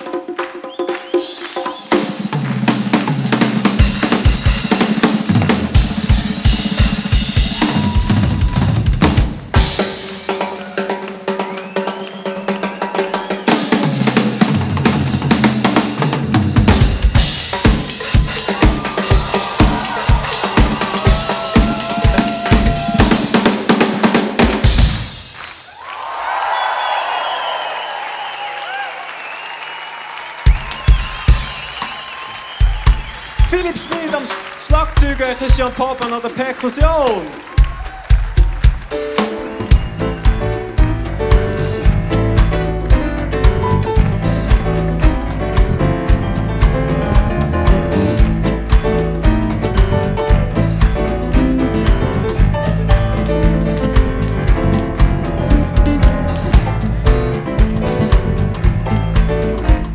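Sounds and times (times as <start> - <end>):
audience cheering: 0.0 - 14.6, 16.0 - 59.9
drum and percussion duet: 0.0 - 27.2, 27.9 - 59.9.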